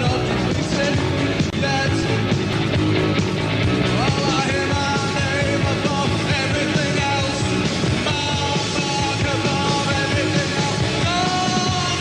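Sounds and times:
man singing into microphone: 0.0s - 2.2s, 4.0s - 12.0s
drums: 0.0s - 12.0s
electric guitar: 0.0s - 12.0s.

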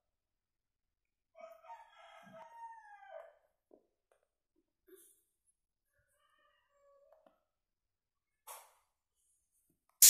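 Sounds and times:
rooster crowing: 1.4s - 3.4s, 6.1s - 7.3s.

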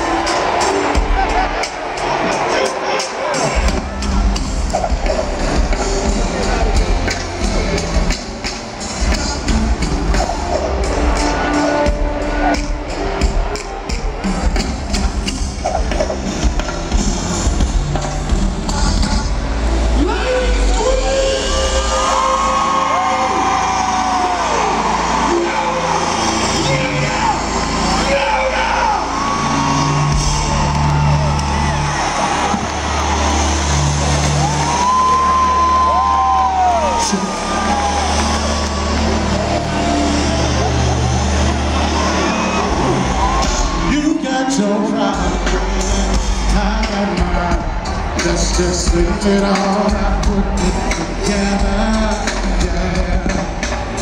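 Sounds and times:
drum rhythm: 0.0s - 19.6s, 30.0s - 35.1s, 45.0s - 54.0s
heavy bass: 0.0s - 54.0s
live band through loud pa: 0.0s - 54.0s.

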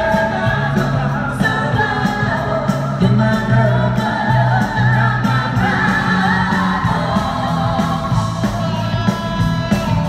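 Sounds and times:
backing voices singing: 0.0s - 9.0s
live pop band playing: 0.0s - 10.0s
man singing lead vocals: 0.0s - 10.0s.

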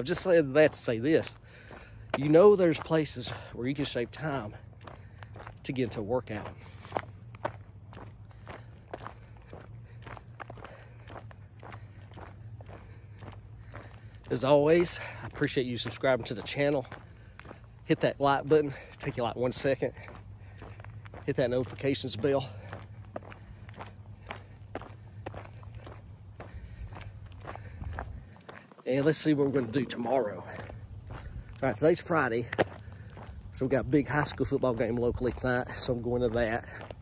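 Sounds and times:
footsteps walking: 0.0s - 37.0s.

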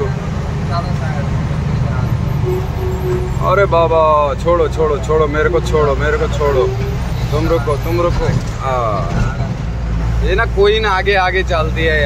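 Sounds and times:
road noise inside cab: 0.0s - 12.0s
truck engine rumble: 0.0s - 12.0s
faint held tone: 2.4s - 3.7s.

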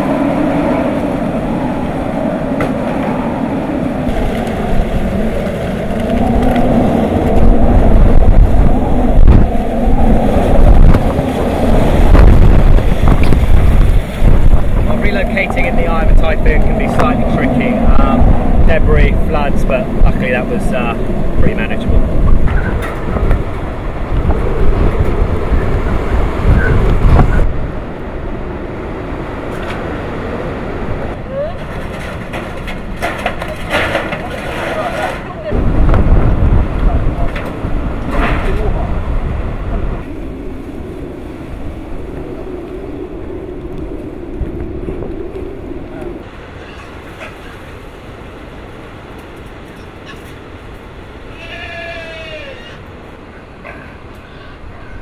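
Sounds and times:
wind buffeting microphone: 0.0s - 55.0s
pig squealing: 51.3s - 52.8s, 53.7s - 55.0s.

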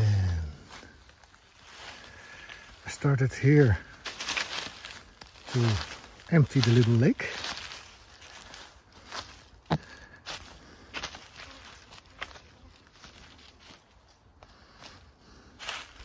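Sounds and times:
footsteps on dry leaf litter: 0.0s - 16.0s.

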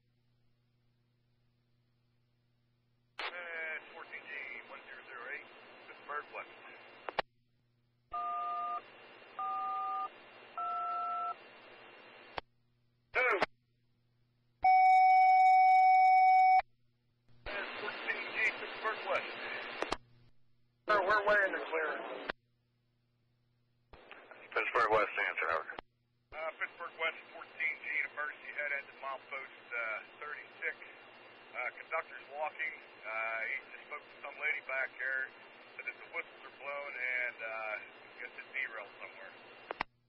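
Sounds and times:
radio chirp: 3.2s - 7.2s, 17.5s - 20.0s, 24.0s - 25.8s, 26.4s - 39.8s
radio static hiss: 3.2s - 7.2s, 11.3s - 12.4s, 13.2s - 13.5s, 17.5s - 20.0s, 24.0s - 25.8s, 26.4s - 39.9s.

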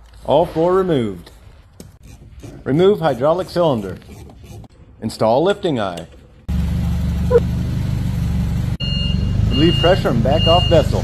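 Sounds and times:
forklift engine running: 6.5s - 11.0s.

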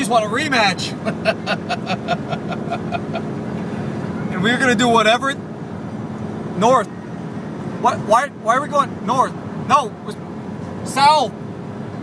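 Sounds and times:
man laughing: 0.9s - 3.4s.

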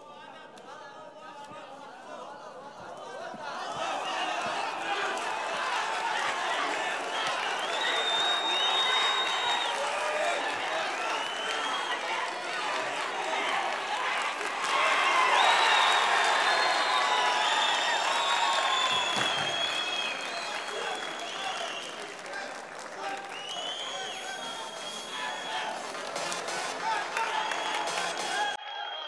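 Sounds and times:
crowd shouting: 0.0s - 29.0s
crowd cheering and applause: 2.8s - 29.0s.

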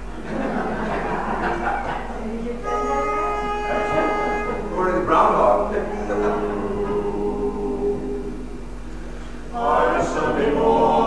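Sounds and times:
low talk: 1.4s - 8.4s
pitch pipe note: 2.6s - 6.5s.

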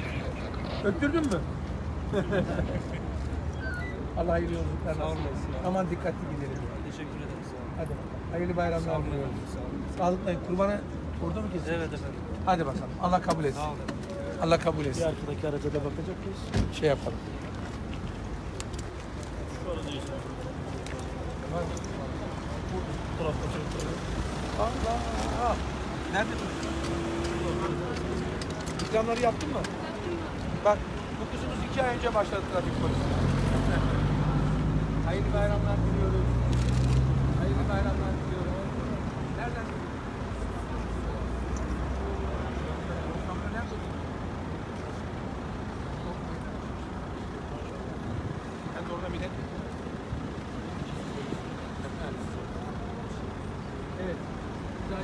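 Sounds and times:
road traffic: 0.0s - 55.0s
car engines idling: 4.2s - 55.0s.

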